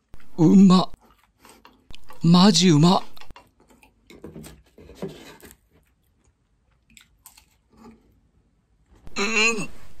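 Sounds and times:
person chewing food: 1.0 - 2.2, 3.0 - 4.7, 5.4 - 8.3
person murmuring: 9.1 - 9.8.

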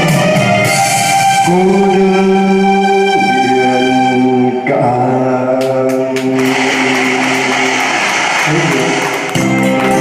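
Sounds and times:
electronic keyboard accompaniment: 0.0 - 10.0
man singing into a microphone: 1.4 - 7.8.

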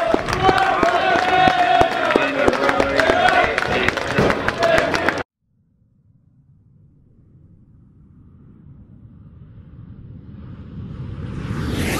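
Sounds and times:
low rumbling sound effect: 5.4 - 11.9.

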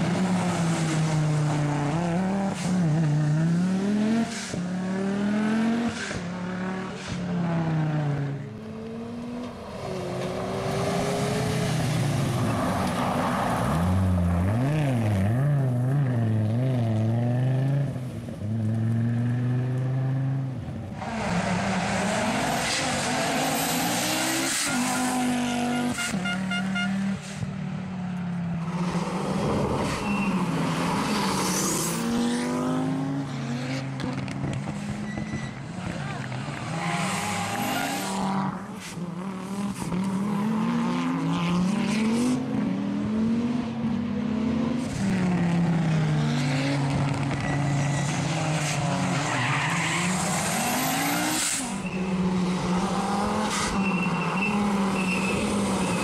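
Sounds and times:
rally car engines revving: 0.0 - 56.0.

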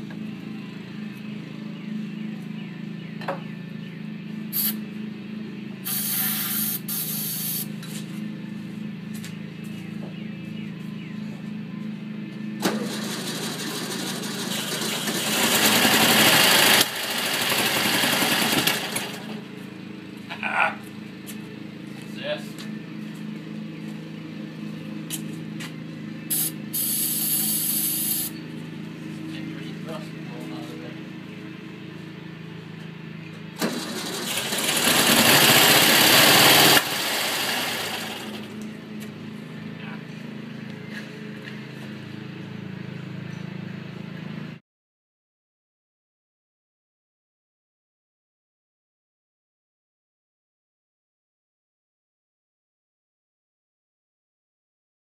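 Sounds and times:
car engine revving: 33.6 - 38.4.

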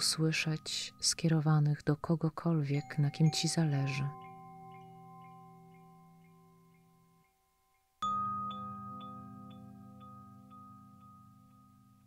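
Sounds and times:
bell-like chime tones: 2.7 - 12.0.

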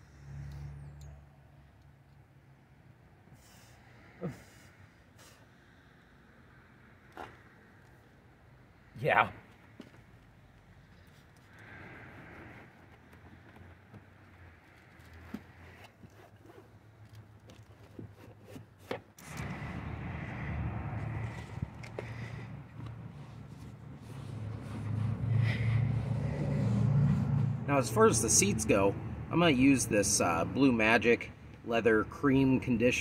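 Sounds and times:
motor vehicle rumble: 0.0 - 32.2
rubbing and handling sounds: 12.2 - 19.1.

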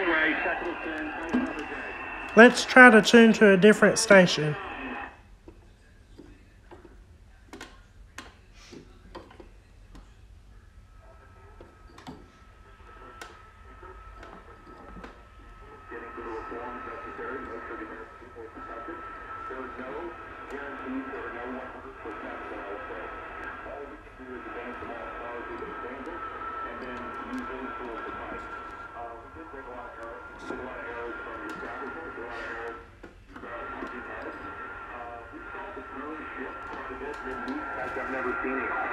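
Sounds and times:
steady high tone: 0.0 - 5.0
thin steady radio whistle: 0.0 - 5.2, 10.6 - 38.9
radio clicks and crackles: 29.9 - 38.9.

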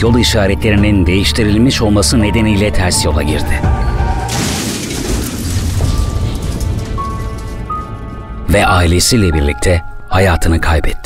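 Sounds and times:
dark background music: 0.0 - 11.0.

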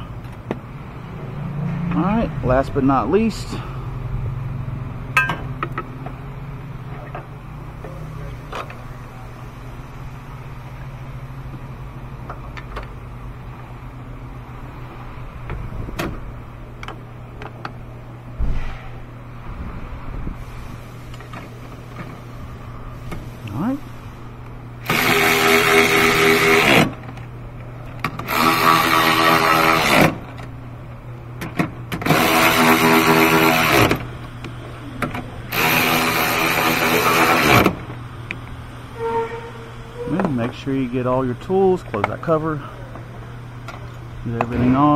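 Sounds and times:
cordless ratchet running: 24.8 - 27.0, 28.2 - 30.2, 32.0 - 34.0, 35.5 - 37.8.

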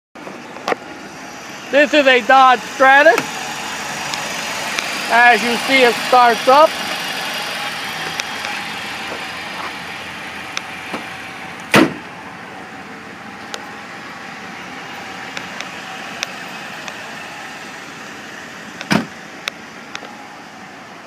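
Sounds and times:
car engine idling: 0.2 - 21.0
car hood slamming: 11.7 - 12.1, 18.9 - 19.2.

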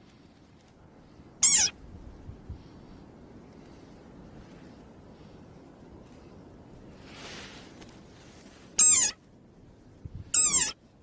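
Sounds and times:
soft hiss: 0.0 - 11.0
frog high-pitched squeaks: 1.4 - 1.8, 8.8 - 9.2, 10.3 - 10.8.

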